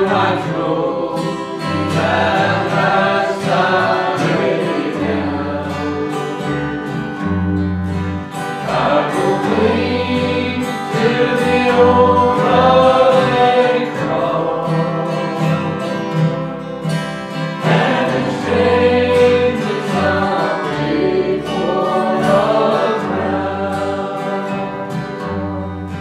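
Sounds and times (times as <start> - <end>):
acoustic guitar: 0.0 - 26.0
gospel singing: 0.0 - 26.0.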